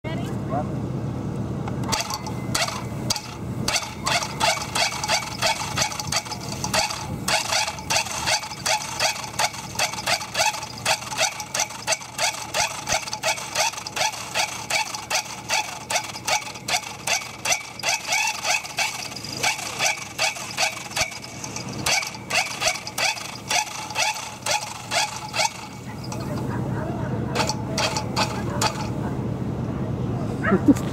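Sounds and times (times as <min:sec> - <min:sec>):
dog yipping: 0:03.8 - 0:04.6.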